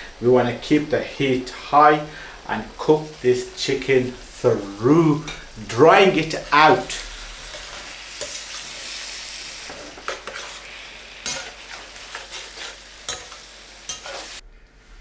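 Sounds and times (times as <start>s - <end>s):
chicken sizzling in a pan: 0.0s - 14.4s
spatula scraping a pan: 7.2s - 14.4s.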